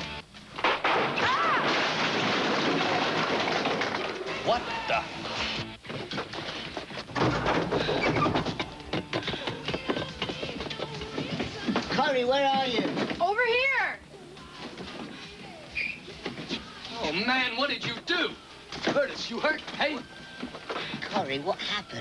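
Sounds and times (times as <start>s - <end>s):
scattered knocks and clatter: 1.8s - 4.4s, 5.8s - 13.3s.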